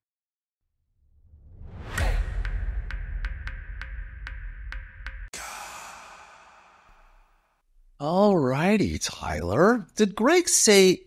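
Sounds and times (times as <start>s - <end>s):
rising whoosh: 1.0s - 3.5s.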